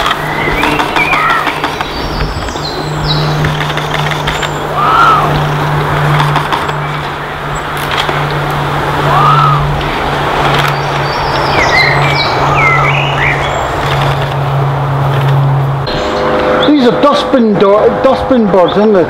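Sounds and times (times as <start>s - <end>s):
bird calls: 0.0s - 8.4s, 9.1s - 14.3s
steady low hum: 0.0s - 19.0s
high bird chirps: 0.1s - 5.6s, 10.6s - 13.8s.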